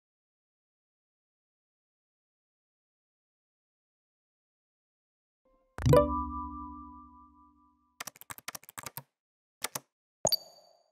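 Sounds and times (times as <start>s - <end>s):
keyboard key clicks: 8.0s - 9.9s.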